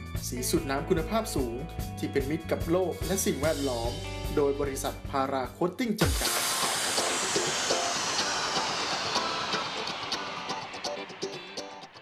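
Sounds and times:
soft background music: 0.0s - 6.2s
long falling hiss whoosh: 6.0s - 12.0s
sharp hit: 6.0s - 12.0s.

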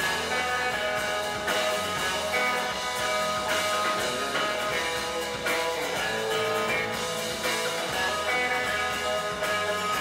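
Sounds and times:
electric guitar: 0.0s - 10.0s
live rock band playing: 0.0s - 10.0s.

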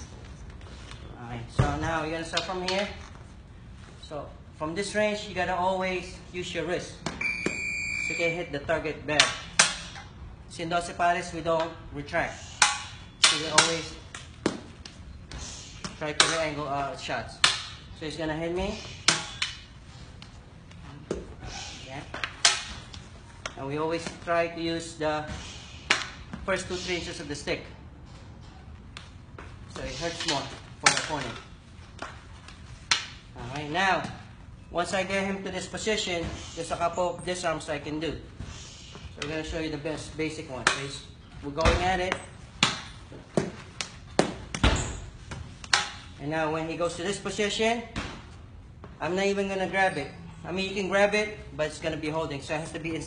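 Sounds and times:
fighting sticks clacking: 9.2s - 10.1s, 12.4s - 15.0s, 15.7s - 16.6s, 17.3s - 17.9s, 18.7s - 20.3s, 22.0s - 24.2s, 25.7s - 26.3s, 29.7s - 33.7s, 40.6s - 41.1s, 42.1s - 44.7s, 45.6s - 46.2s.

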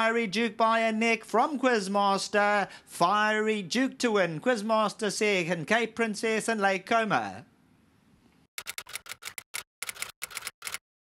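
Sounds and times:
typewriter keystroke clicks: 8.6s - 10.8s.

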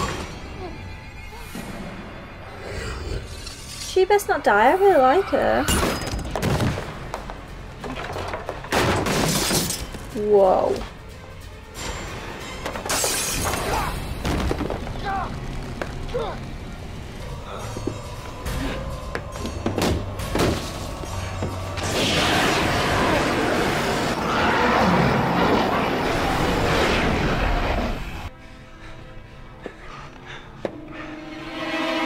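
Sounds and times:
tense score music: 0.0s - 32.0s
glass shattering: 8.7s - 10.1s, 12.8s - 14.4s.

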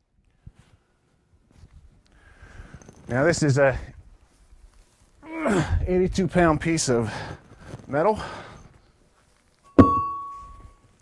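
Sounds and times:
metallic ringing tone: 9.6s - 11.0s
metal cylinder thunk: 9.8s - 10.3s.

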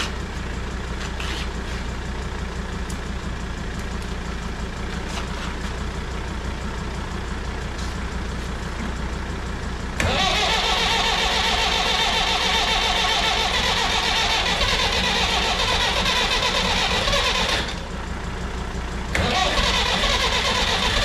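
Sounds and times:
tractor engine cranked by starter: 8.6s - 21.0s.

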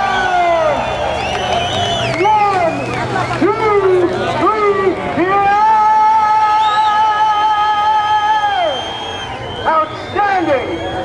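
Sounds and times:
man yelling: 3.4s - 8.7s
man whooping calls: 5.4s - 11.0s.

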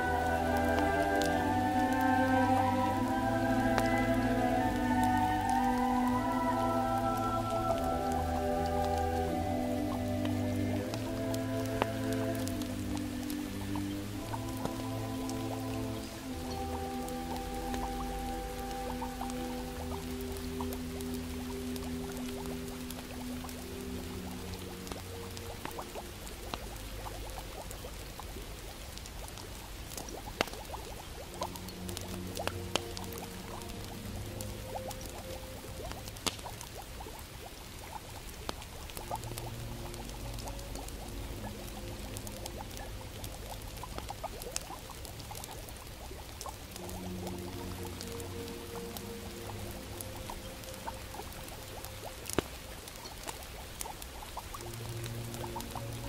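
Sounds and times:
fire crackling and popping: 0.0s - 56.0s
soft slow background music: 0.0s - 56.0s.

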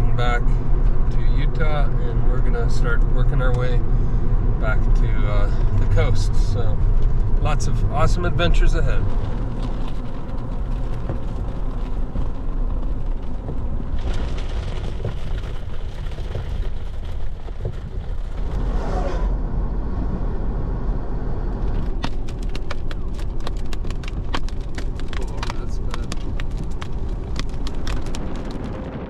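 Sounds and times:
truck passing: 0.0s - 29.0s
wind and road noise rumble: 0.0s - 29.0s.

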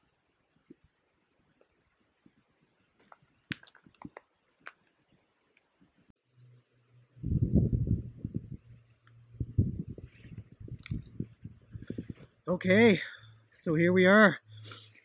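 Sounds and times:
faint steady hum: 0.0s - 15.0s
rapid low puffs on cigar: 9.4s - 12.4s.

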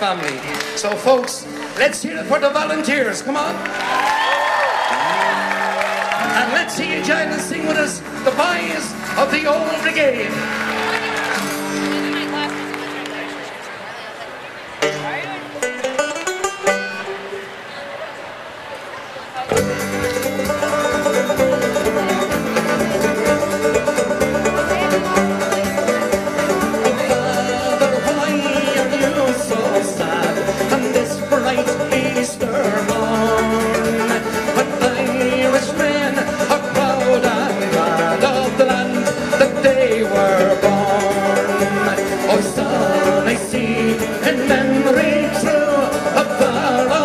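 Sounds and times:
folk band with banjo and guitars: 0.0s - 47.0s.

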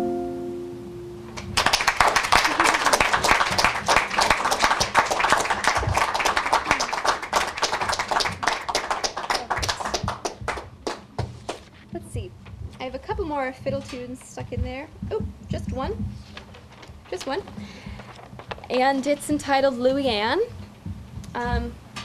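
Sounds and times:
acoustic guitar notes ringing: 0.0s - 1.4s
audience applause: 1.4s - 11.7s.

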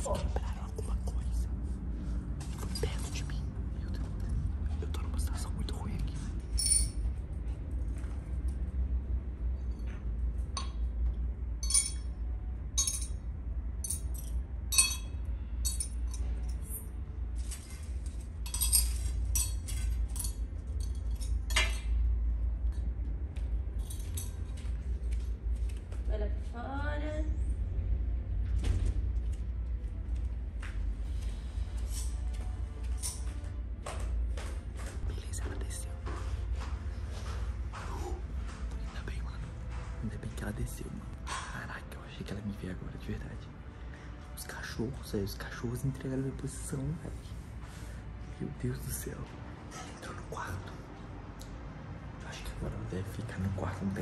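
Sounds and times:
steady low hum: 0.0s - 54.0s
clinks of small hard objects: 6.6s - 7.0s, 11.6s - 12.1s, 12.8s - 13.2s, 13.8s - 16.8s, 17.4s - 21.8s.

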